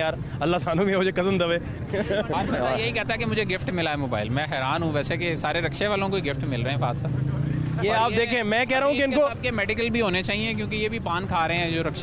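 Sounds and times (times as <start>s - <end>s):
male voices of street crowd: 0.0s - 12.0s
man speaking: 0.0s - 12.0s.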